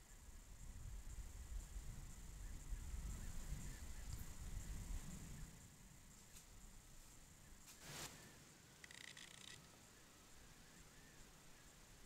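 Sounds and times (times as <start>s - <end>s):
faint rustle: 6.0s - 11.7s.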